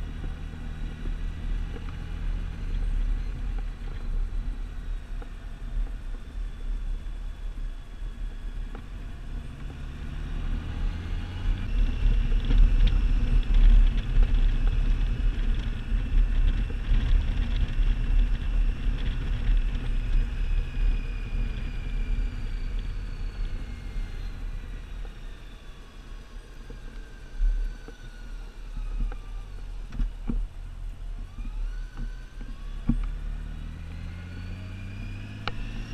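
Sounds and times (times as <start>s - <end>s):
motorcycle engine and road rumble: 0.0s - 35.9s.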